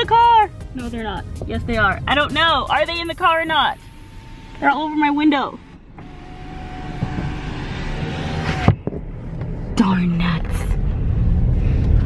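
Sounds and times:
rushing noise: 1.0 - 8.4
car power window motor whine: 3.2 - 9.6.

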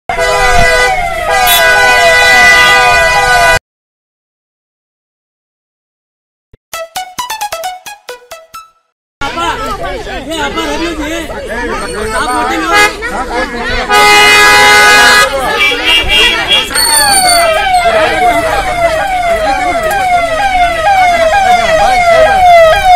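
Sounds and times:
vehicle horn blast: 0.1 - 3.6, 13.8 - 17.5
police siren wailing: 16.8 - 22.9.

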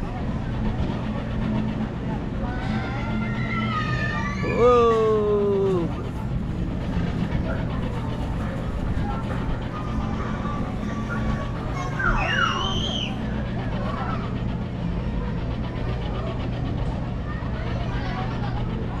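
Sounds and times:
carnival ride machine hum: 0.0 - 19.0
child calling: 2.8 - 6.0, 10.2 - 13.2
child squealing: 3.0 - 5.9.

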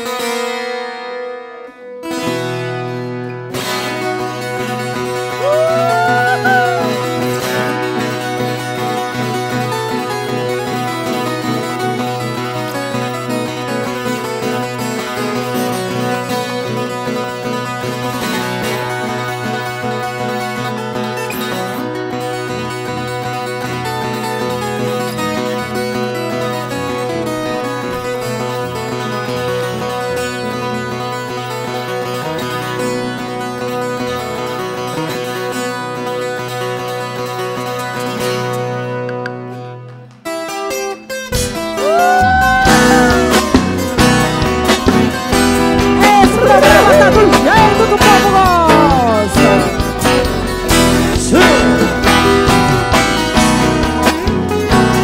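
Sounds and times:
acoustic guitar accompaniment: 0.0 - 55.0
plucked string melody: 0.0 - 55.0.

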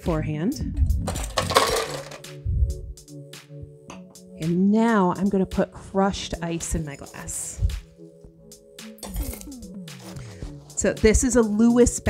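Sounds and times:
background music: 0.0 - 12.0
ice clattering from glass: 1.2 - 2.2.

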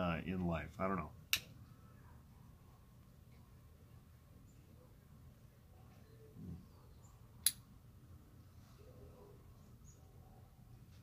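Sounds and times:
faint low hum: 0.0 - 11.0
sharp click: 7.4 - 7.6.

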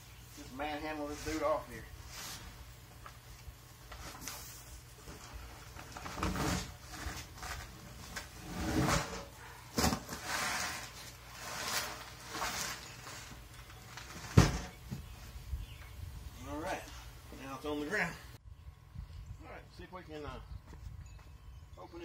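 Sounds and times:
cardboard box scraping and knocking: 5.1 - 13.0, 14.0 - 15.2.

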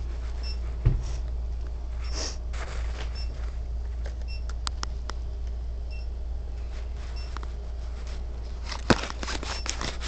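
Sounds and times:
steady low hum: 0.0 - 10.0
soft rustles: 1.9 - 4.0, 6.6 - 10.0.

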